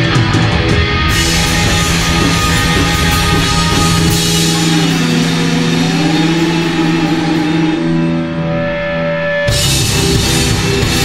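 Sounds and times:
drum hits: 0.0 - 6.8
bass guitar notes: 0.0 - 11.0
droning electric guitar: 0.0 - 11.0.

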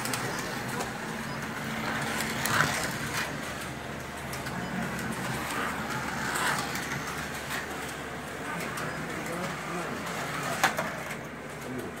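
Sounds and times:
indistinct voices: 0.0 - 12.0
slot car motors whirring: 0.0 - 12.0.

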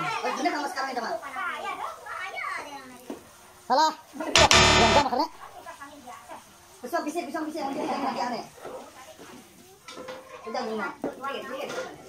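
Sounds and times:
faint background talk: 5.4 - 12.0.

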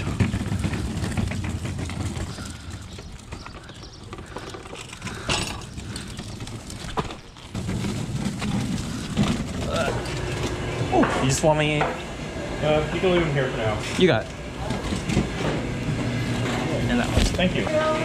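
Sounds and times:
hand truck rattling and clicking: 0.0 - 10.6
hand truck wheels rumbling on pavement: 0.0 - 18.0.

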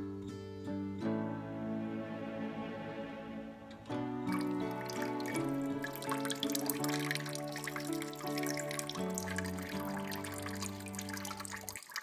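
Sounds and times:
background music sustained notes: 0.0 - 11.8
kitchen tap running water: 4.3 - 12.0.

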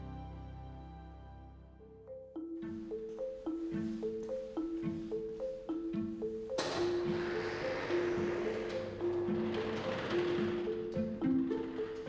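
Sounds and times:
soft mallet percussion music: 1.8 - 12.0
roller shutter door rolling up: 6.6 - 12.0.

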